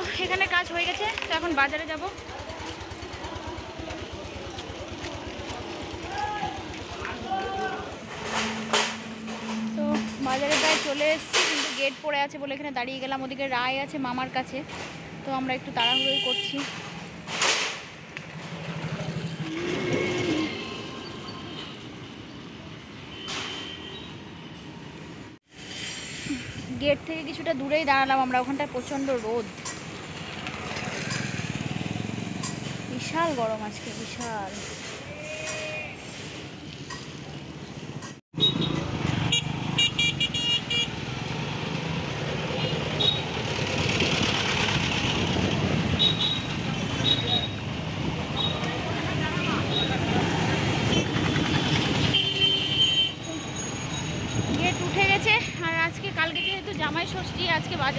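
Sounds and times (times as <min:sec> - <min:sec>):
road noise: 0:00.0 - 0:57.9
short pitched tone: 0:08.2 - 0:10.4
car horn beeps: 0:15.8 - 0:16.6, 0:23.1 - 0:24.3, 0:38.4 - 0:40.9, 0:52.1 - 0:53.3.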